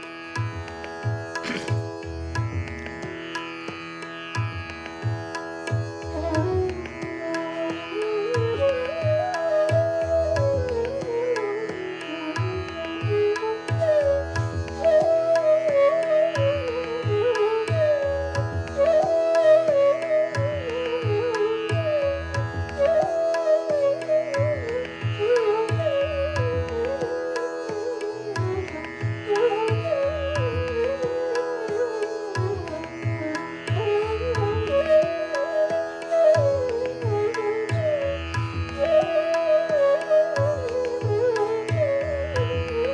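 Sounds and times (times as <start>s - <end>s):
bamboo flute melody: 0.0s - 3.6s, 4.2s - 42.9s
tabla strokes: 0.0s - 42.9s.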